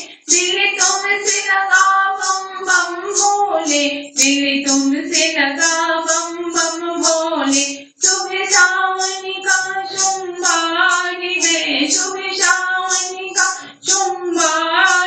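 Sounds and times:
high percussion beat: 0.0 - 15.0
high solo voice singing: 0.0 - 15.0.

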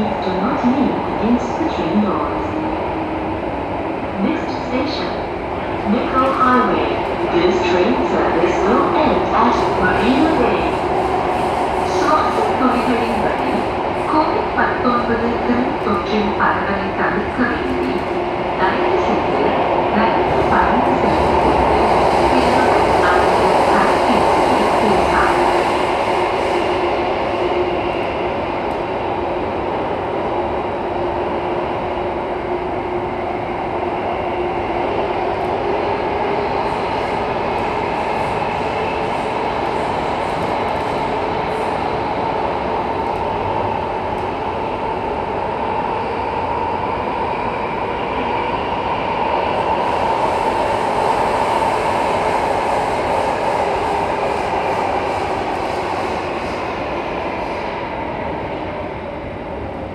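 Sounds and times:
train rolling rumble: 0.0 - 59.9.

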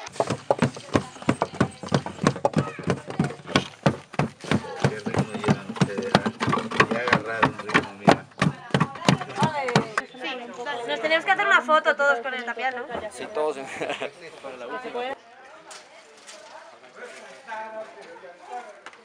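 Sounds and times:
wooden rammer tamping earth: 0.0 - 10.0.

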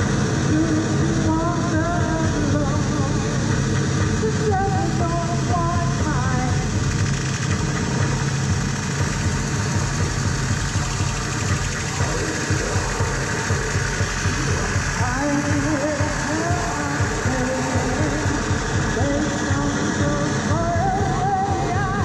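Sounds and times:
pulsing low rumble: 0.0 - 22.0
wall of electronic noise: 0.0 - 22.0.

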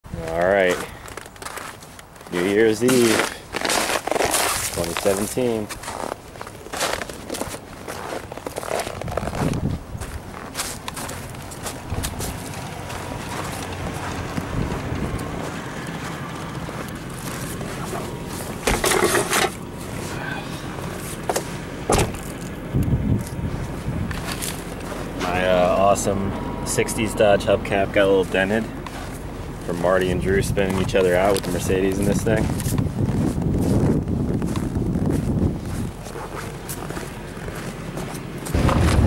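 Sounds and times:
footsteps crunching on snow: 0.2 - 22.6, 23.2 - 26.2, 28.0 - 39.0.

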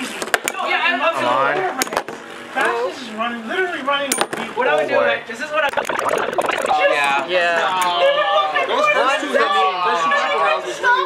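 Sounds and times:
people talking and exclaiming: 5.6 - 11.0.

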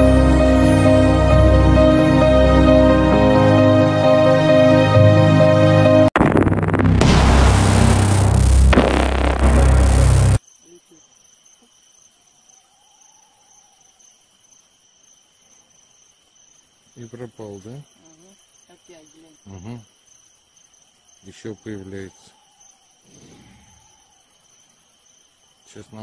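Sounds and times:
music: 0.0 - 10.4
high-pitched cricket trill: 9.3 - 26.0.

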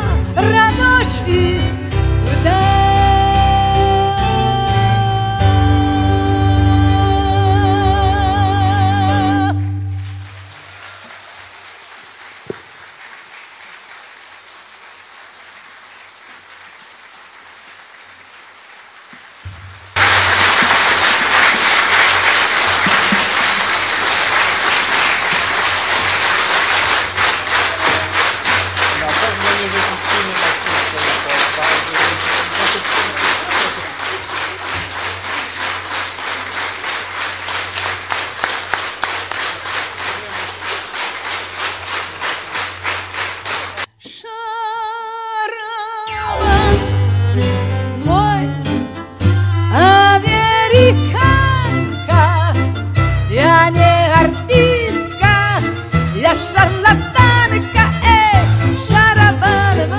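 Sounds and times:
audience applause: 9.9 - 43.9
rhythmic clapping in unison: 9.9 - 44.0, 50.2 - 59.9.

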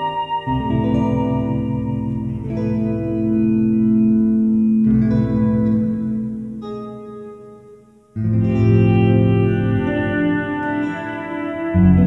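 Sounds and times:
reverberant electric guitar chords: 0.0 - 12.0
low pulsing bass line: 0.5 - 6.9, 8.2 - 10.6, 11.8 - 12.0.

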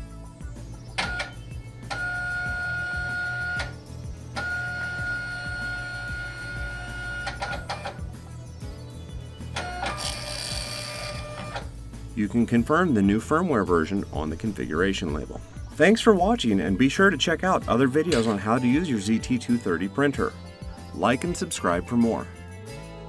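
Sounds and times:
background music: 0.0 - 23.0
printer feed motor whine: 1.0 - 3.8, 4.4 - 8.0, 9.6 - 11.7
printer clicks: 7.1 - 8.0.

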